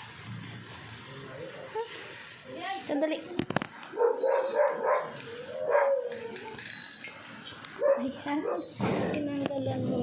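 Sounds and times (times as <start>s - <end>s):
dog whining barks: 3.9s - 6.8s, 7.8s - 8.8s.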